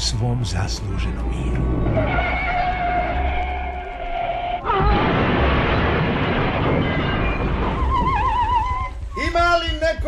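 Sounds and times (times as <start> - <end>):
car crash: 4.6 - 9.0.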